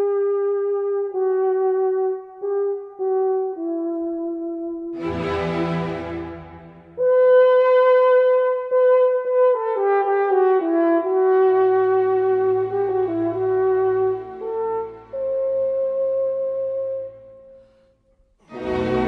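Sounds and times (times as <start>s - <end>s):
french horn solo: 0.0s - 17.8s.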